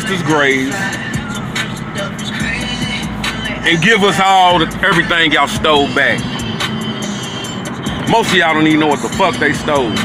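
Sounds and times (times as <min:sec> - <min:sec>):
car cabin noise: 0:00.0 - 0:10.0.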